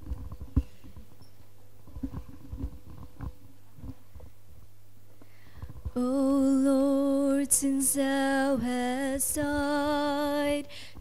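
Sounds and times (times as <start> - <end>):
small low knocks and rustles: 0.0 - 6.0
low electrical hum: 0.0 - 11.0.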